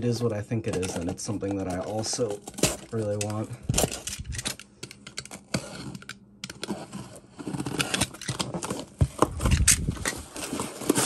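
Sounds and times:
cardboard flaps scraping: 6.6s - 11.0s.

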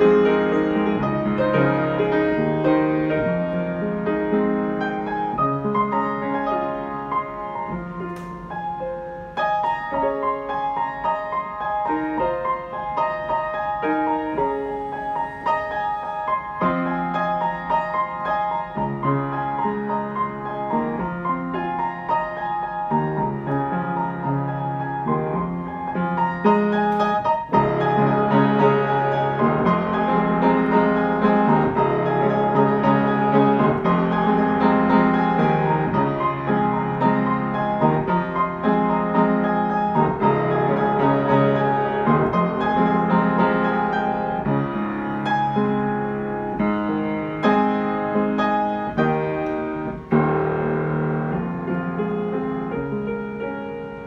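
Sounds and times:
solo piano playing: 0.0s - 54.0s.

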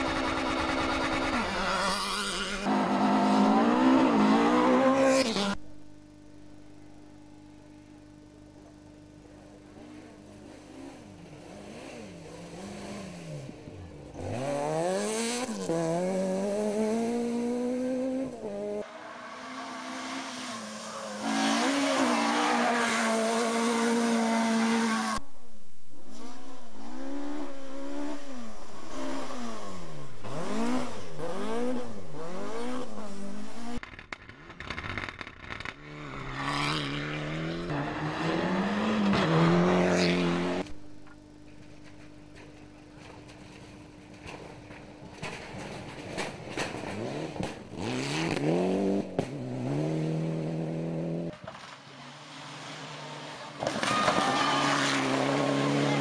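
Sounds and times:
rally car engines revving: 0.0s - 6.3s, 8.2s - 25.3s, 26.0s - 56.0s.

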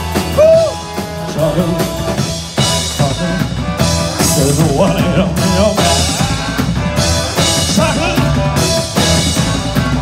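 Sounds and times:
bass line: 0.0s - 10.0s
drum kit steady beat: 0.0s - 10.0s
rock band music: 0.0s - 10.0s.

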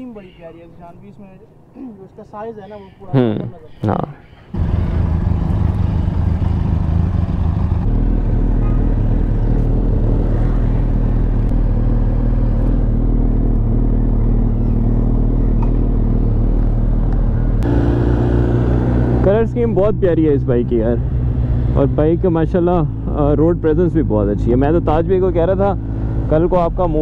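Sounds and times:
motorcycle engine running: 4.6s - 27.0s.

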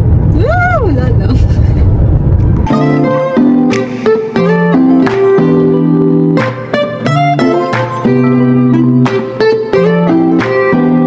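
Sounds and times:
car cabin road noise: 0.0s - 2.8s.

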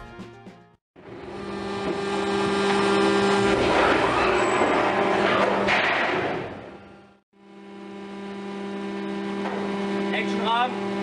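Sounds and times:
mechanical whine and hum: 1.0s - 11.0s.

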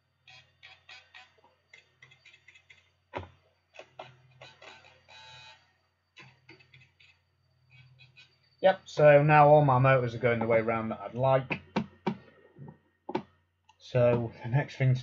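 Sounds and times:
tiny motors whirring in bursts: 4.0s - 5.6s.

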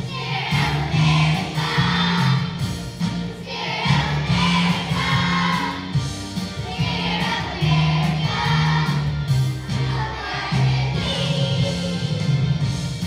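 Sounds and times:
children's choir singing: 0.0s - 12.8s.

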